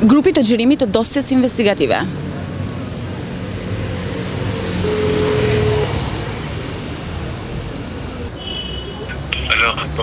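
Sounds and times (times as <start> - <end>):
street traffic: 0.0 - 10.0
car passing: 1.5 - 10.0
phone ringback tone: 4.8 - 6.0.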